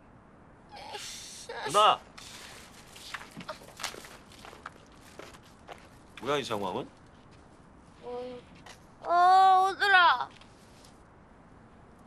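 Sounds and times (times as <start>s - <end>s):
footsteps on pavement: 2.8s - 6.3s.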